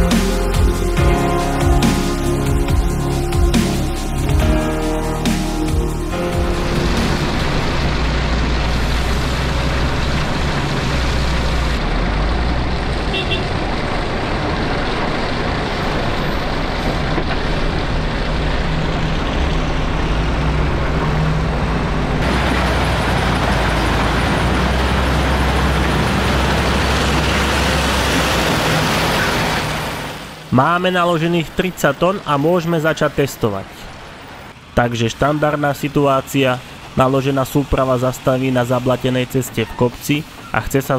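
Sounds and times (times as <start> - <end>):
diesel machinery rumbling: 0.0 - 40.9.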